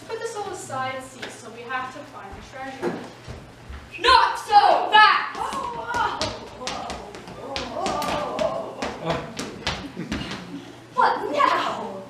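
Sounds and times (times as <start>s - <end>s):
footsteps on hard stage floor: 2.3s - 4.0s, 5.4s - 10.6s.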